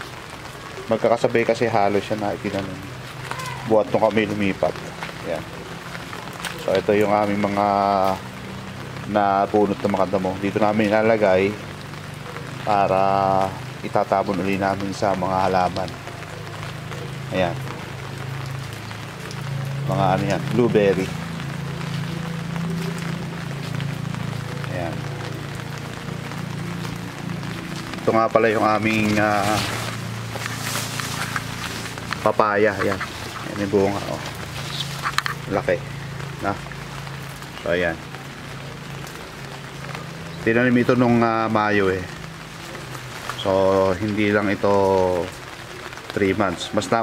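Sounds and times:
light rain pattering: 0.0s - 47.0s.

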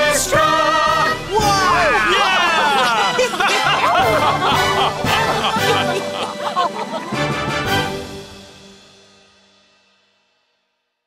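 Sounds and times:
orchestral closing chord: 0.9s - 9.0s.

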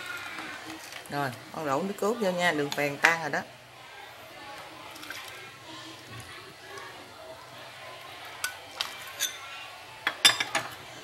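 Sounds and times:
liquid pouring into a pot: 0.0s - 1.6s, 3.5s - 9.4s.

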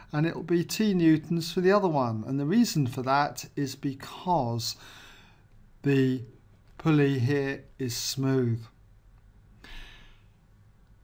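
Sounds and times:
faint breath into microphone: 4.8s - 5.5s, 9.6s - 10.4s.

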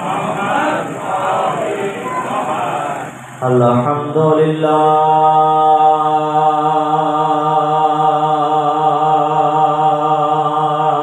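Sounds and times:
man chanting through a microphone: 0.0s - 11.0s.

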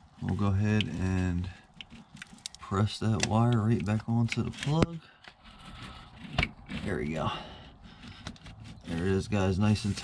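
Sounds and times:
hand rustling among hoses: 0.0s - 10.0s
man's voice: 2.6s - 5.0s, 8.9s - 10.0s.

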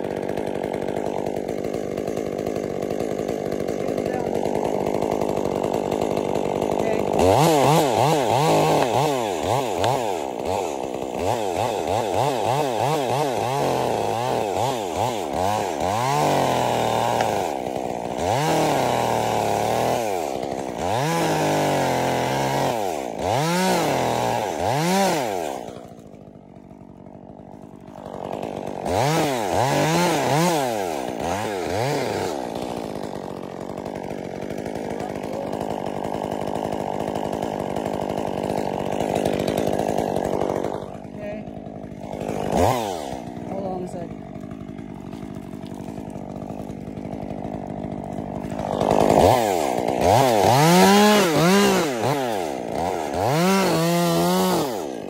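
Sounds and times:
chainsaw revving: 0.0s - 55.0s.

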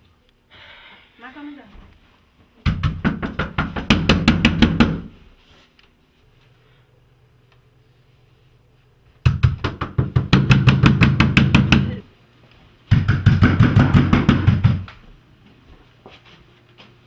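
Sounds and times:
rapid heavy knocking on door: 2.7s - 5.1s, 9.3s - 12.0s, 12.9s - 14.9s.

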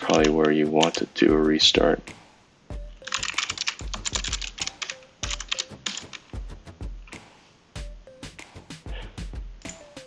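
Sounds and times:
computer keyboard typing: 0.0s - 1.1s, 2.9s - 6.4s.

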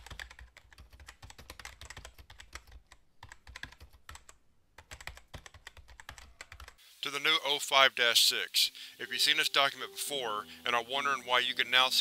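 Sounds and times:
fast typing on keyboard: 0.0s - 6.8s.

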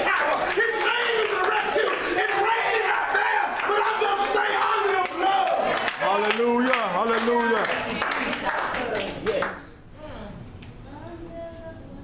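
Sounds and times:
sharp claps: 0.0s - 2.6s
excited shouting voices: 0.0s - 6.6s.

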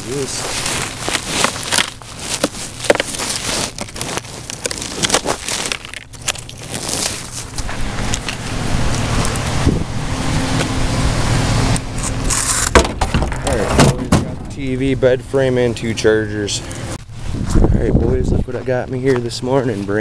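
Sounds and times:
footsteps on snowy pavement: 0.0s - 9.6s, 17.0s - 20.0s
vehicle engine running: 7.3s - 19.7s
knocks and scrapes: 11.9s - 14.6s.

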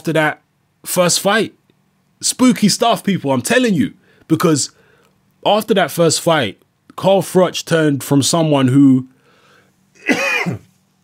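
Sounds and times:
man clearing throat: 10.0s - 10.7s.

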